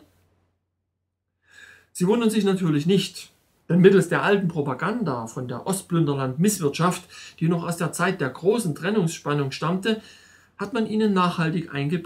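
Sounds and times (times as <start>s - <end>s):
inhaled breath: 1.4s - 1.9s, 10.0s - 10.6s
man narrating: 2.0s - 10.0s, 10.6s - 12.0s.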